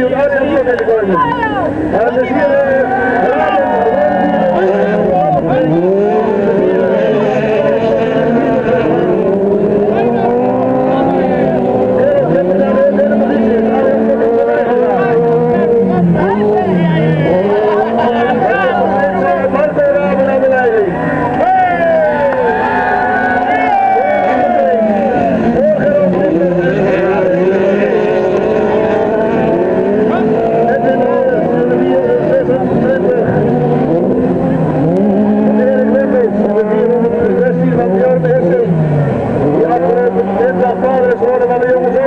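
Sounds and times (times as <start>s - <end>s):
racing car engines revving: 0.0s - 42.0s.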